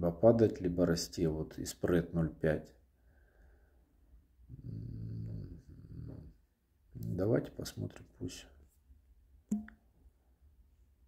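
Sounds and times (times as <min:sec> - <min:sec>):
man humming low: 0:04.5 - 0:06.3.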